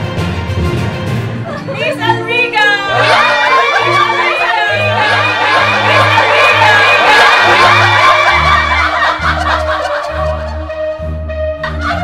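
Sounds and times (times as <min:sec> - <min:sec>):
women shrieking and laughing: 0:02.6 - 0:10.7, 0:11.6 - 0:12.0.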